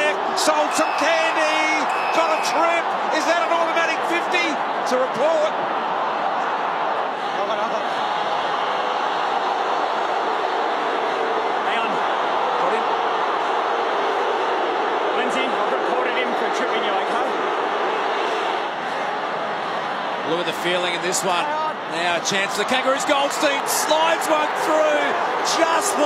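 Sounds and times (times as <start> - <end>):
stadium crowd voices: 0.0 - 26.0.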